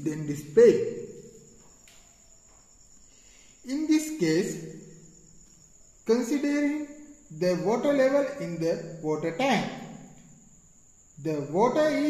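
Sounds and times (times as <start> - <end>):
person speaking: 0.0 - 1.2, 3.6 - 4.8, 6.1 - 10.0, 11.2 - 12.0.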